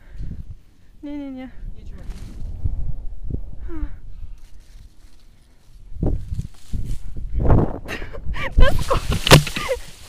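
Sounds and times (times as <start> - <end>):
branches and leaves rustling: 1.7 - 3.2, 4.0 - 7.4, 8.6 - 10.0.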